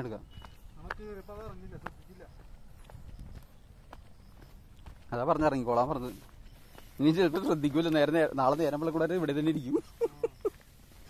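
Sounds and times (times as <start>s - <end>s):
sandal footsteps on rock: 0.2s - 8.8s.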